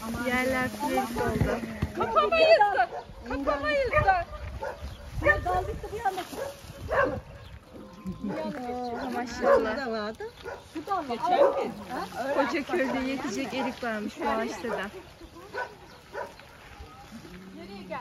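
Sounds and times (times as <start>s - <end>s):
women calling and talking: 0.0s - 18.0s.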